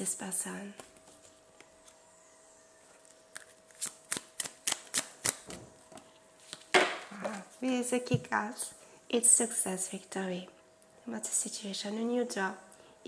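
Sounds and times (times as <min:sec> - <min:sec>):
cards being shuffled: 0:03.0 - 0:05.5.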